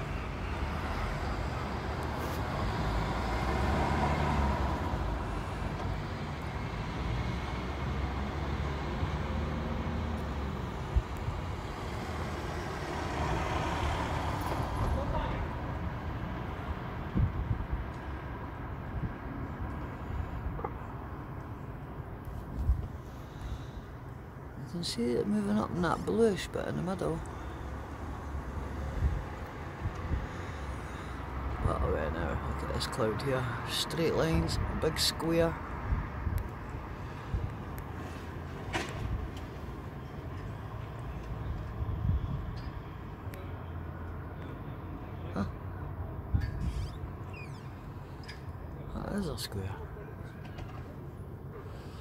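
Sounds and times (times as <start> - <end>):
road traffic rumble: 0.0 - 52.0
vehicles passing: 0.0 - 52.0.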